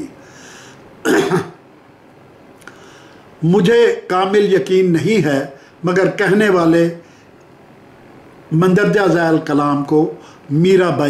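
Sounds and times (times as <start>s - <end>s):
man clearing his throat: 1.0s - 1.6s.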